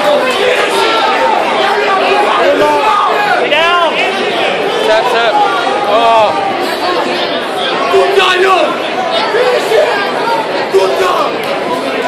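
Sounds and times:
spectators shouting and talking: 0.0 - 12.0.

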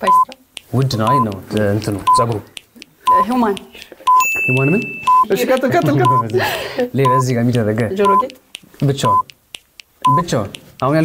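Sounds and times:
people talking: 0.0 - 2.5, 3.1 - 9.3, 10.1 - 11.0
countdown timer beeping: 0.0 - 11.0.

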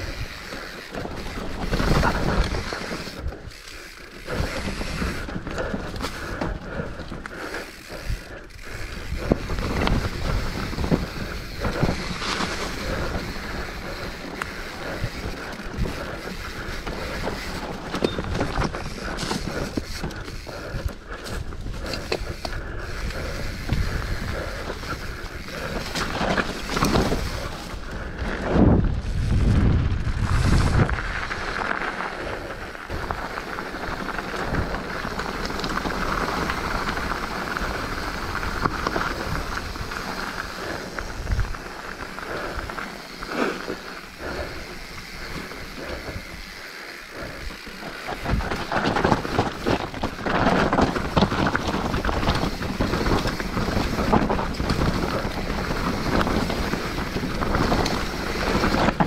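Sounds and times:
bike rattling and knocking: 0.0 - 59.0
bike tyres on dirt and leaves: 0.0 - 59.0
wind rushing over microphone: 4.2 - 43.3, 47.2 - 59.0.

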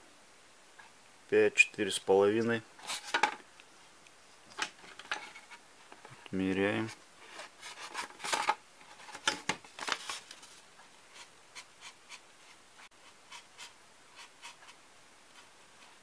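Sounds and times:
marker scratching on foam: 11.1 - 16.0.

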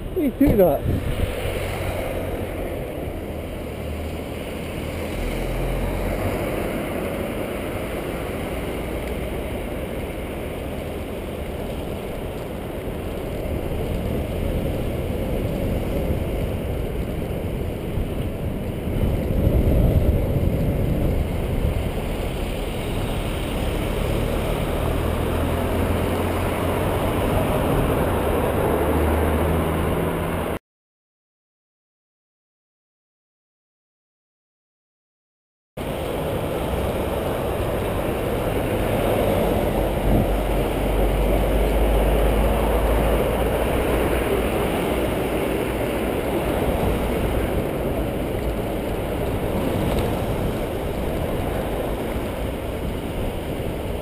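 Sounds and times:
wind and road noise: 0.0 - 30.6, 35.8 - 54.0.

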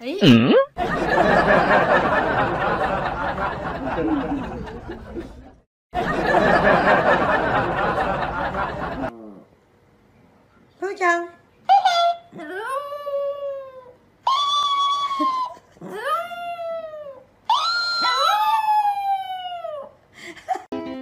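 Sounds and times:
dog yipping: 17.5 - 18.9.

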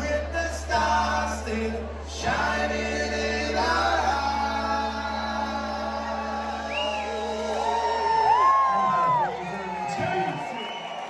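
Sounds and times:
live band music with singing: 0.0 - 10.6
people whooping and shouting: 5.4 - 11.0.

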